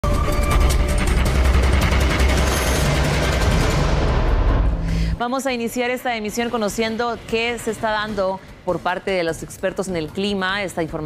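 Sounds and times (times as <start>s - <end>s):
news intro theme music: 0.0s - 9.6s.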